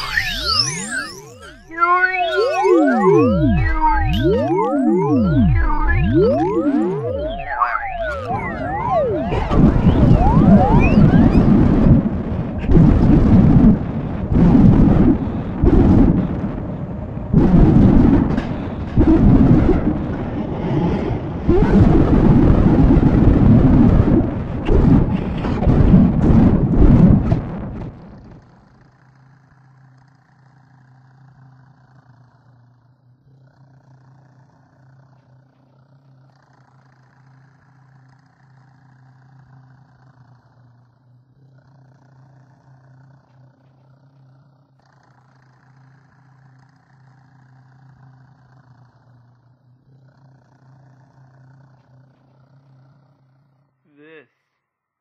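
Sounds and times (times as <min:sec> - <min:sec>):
higher tone: 0:00.0 - 0:16.4
thunder rumbling and cracking: 0:08.2 - 0:28.5.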